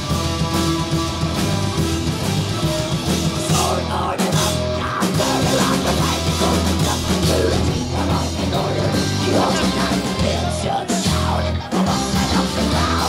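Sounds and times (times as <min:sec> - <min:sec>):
bass guitar: 0:00.0 - 0:13.0
distorted guitars: 0:00.0 - 0:13.0
drum kit: 0:00.0 - 0:13.0.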